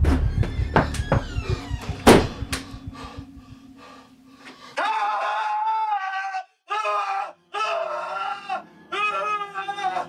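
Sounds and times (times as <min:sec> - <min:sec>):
man screaming in terror: 0:04.8 - 0:10.0.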